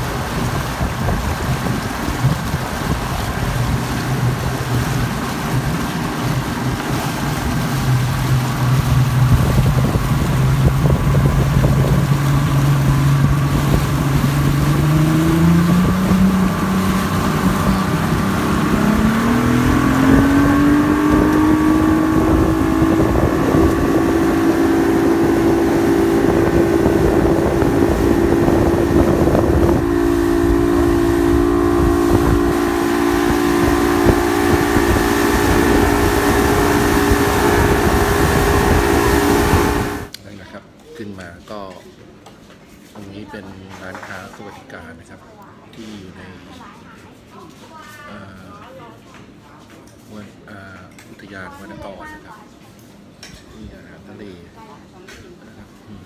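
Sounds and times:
motorboat engine speeding up: 0.0 - 40.1
rushing water: 0.0 - 40.1
wind noise: 0.0 - 40.1.

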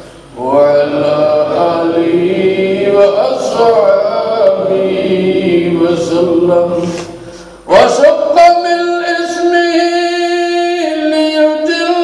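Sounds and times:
man chanting melodically: 0.4 - 12.0.

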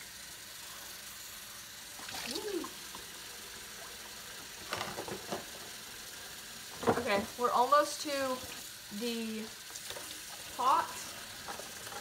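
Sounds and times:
tap water running into sink: 1.8 - 12.0.

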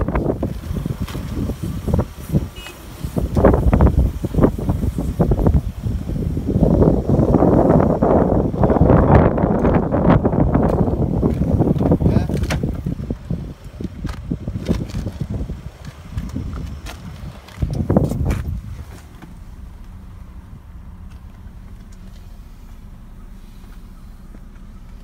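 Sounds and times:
car engine idling: 0.0 - 25.0
handling knocks and rustles: 13.7 - 20.1.

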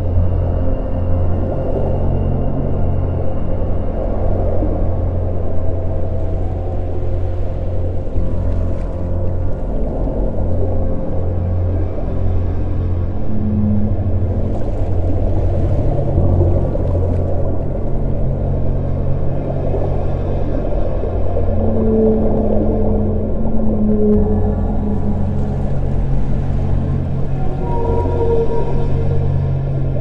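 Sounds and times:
ambient meditation music drone: 0.0 - 30.0
whale calls: 21.5 - 30.0.

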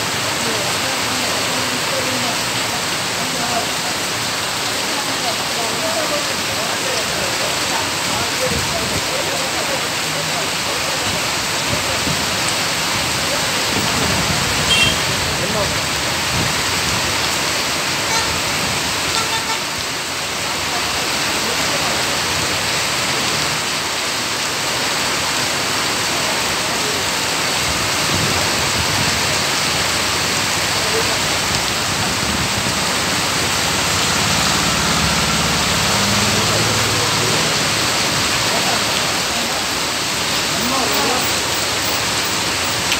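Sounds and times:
heavy rain on a flooded street: 0.0 - 42.9.

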